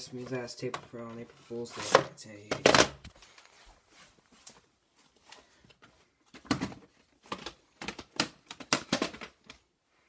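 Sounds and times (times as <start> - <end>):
plastic cases clacking: 6.3 - 9.6.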